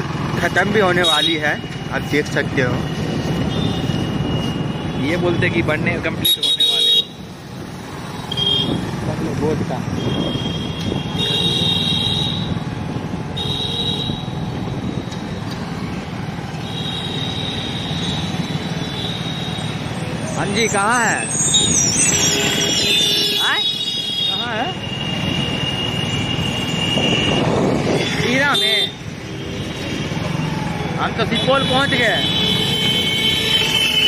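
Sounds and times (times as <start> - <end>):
road and engine noise: 0.0 - 34.0
high-pitched squeal: 19.0 - 23.5.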